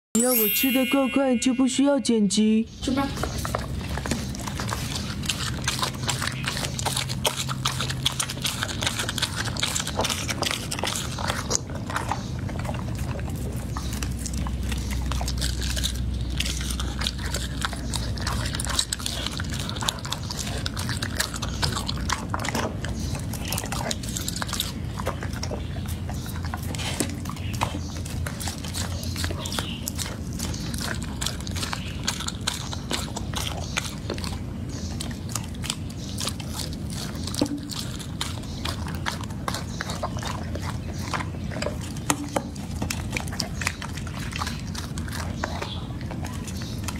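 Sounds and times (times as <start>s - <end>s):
dog chewing meat off a bone: 3.0s - 46.9s.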